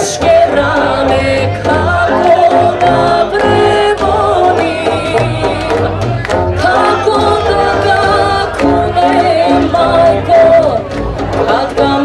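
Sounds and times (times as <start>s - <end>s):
brass band playing: 0.0s - 12.0s
woman singing into a microphone: 0.0s - 12.0s.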